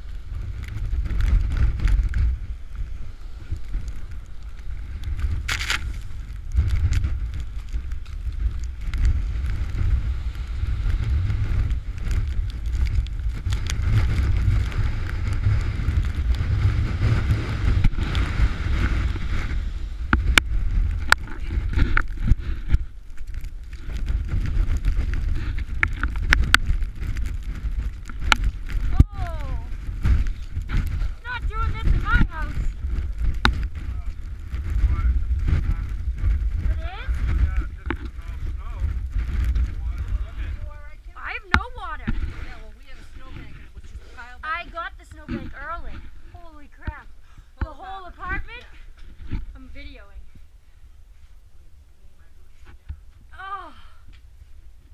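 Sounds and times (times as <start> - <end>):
storm wind buffeting microphone: 0.0 - 51.1.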